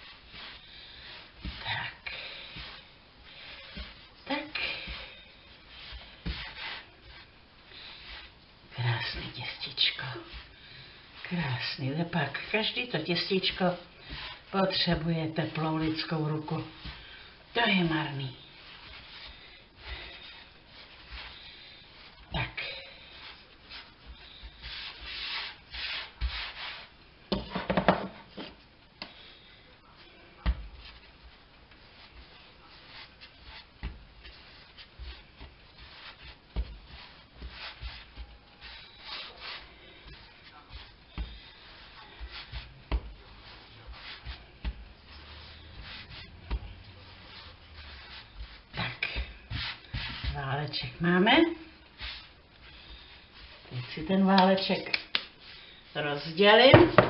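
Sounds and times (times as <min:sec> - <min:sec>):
hands kneading dough on countertop: 0:00.0 - 0:57.0.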